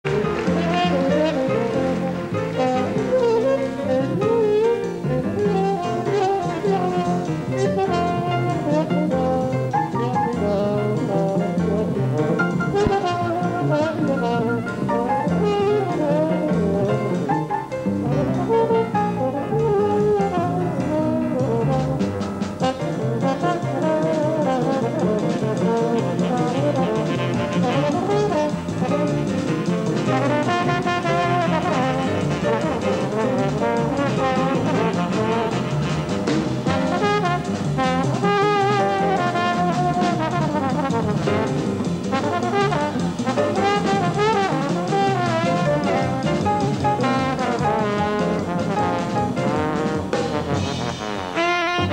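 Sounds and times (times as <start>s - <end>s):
band keeping a steady beat: 0.0s - 51.9s
jazz trombone solo: 0.1s - 51.9s.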